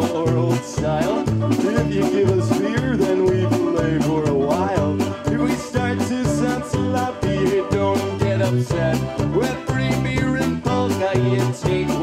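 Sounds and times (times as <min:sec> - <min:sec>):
accordion: 0:00.0 - 0:12.0
banjo: 0:00.0 - 0:12.0
bouncing bass line: 0:00.0 - 0:12.0
drum kit: 0:00.0 - 0:12.0
polka band playing: 0:00.0 - 0:12.0.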